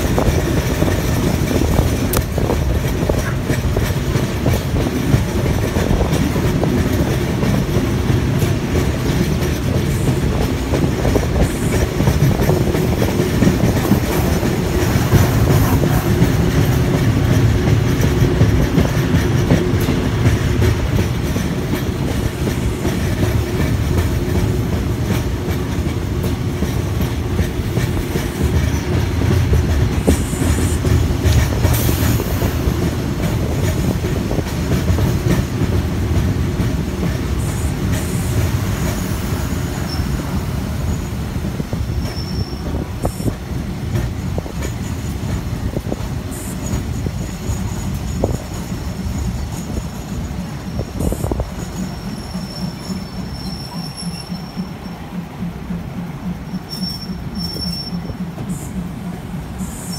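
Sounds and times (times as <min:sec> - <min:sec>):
train rumbling on track: 0:00.0 - 0:59.9.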